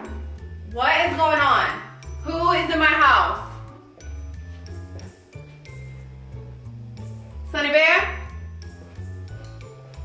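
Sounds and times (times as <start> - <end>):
background music with bass beat: 3.4 - 7.4.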